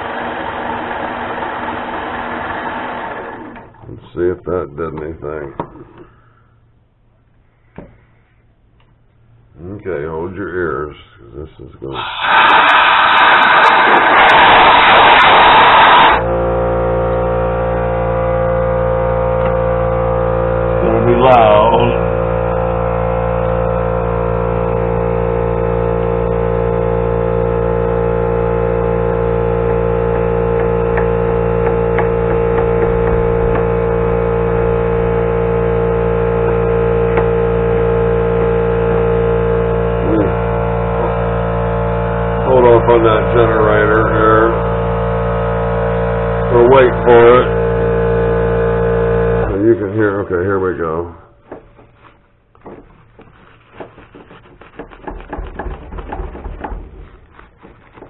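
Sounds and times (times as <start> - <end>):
electric motor hum: 0.0 - 3.8, 12.0 - 58.0.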